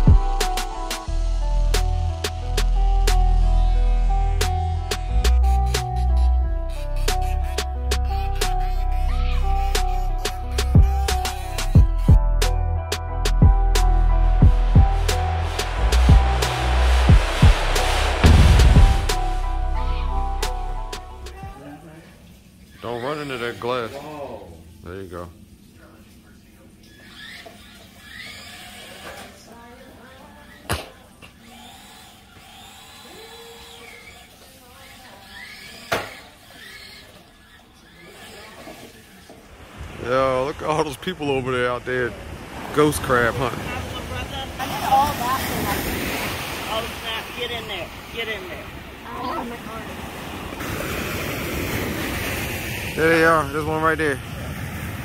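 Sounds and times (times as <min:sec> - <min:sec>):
ocean surf rushing: 0:14.5 - 0:21.3, 0:39.5 - 0:55.0.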